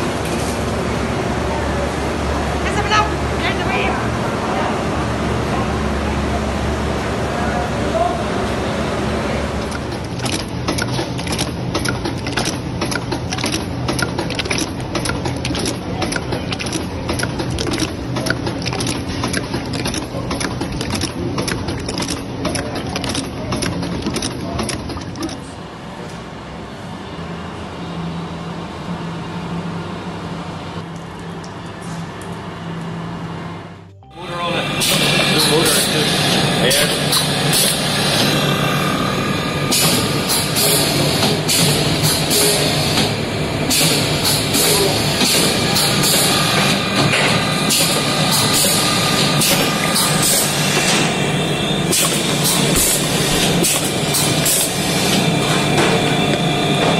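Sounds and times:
machine hum: 0:00.0 - 0:26.0, 0:27.0 - 0:56.9
sharp regular machine clicks: 0:09.6 - 0:25.4.

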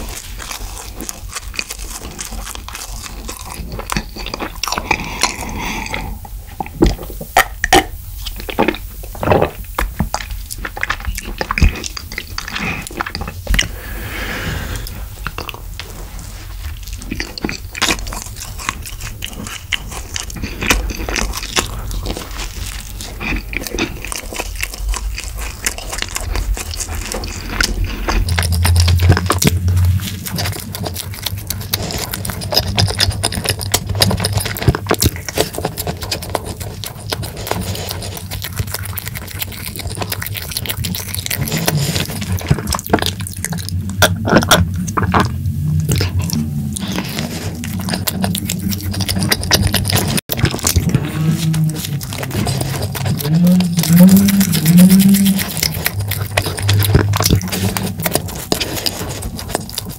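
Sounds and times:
biting and chewing cake: 0:00.0 - 0:59.9
swallowing and gulping: 0:00.9 - 0:59.9
sticky mouth clicks: 0:16.8 - 0:59.9.

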